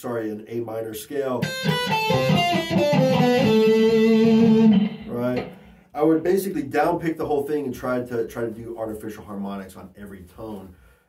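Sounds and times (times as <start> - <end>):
electric guitar picked notes: 1.4 - 5.7.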